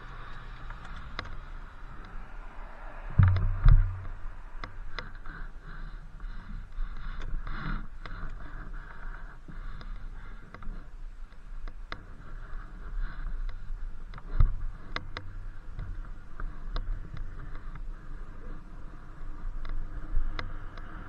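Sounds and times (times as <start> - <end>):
electric unicycle rolling on pavement: 0.0 - 21.0
heavy low thumps: 3.1 - 4.5.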